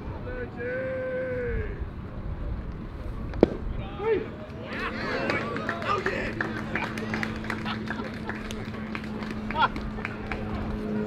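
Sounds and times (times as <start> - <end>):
steady low hum: 0.0 - 11.0
voices shouting and calling out: 0.1 - 2.0, 3.6 - 10.8.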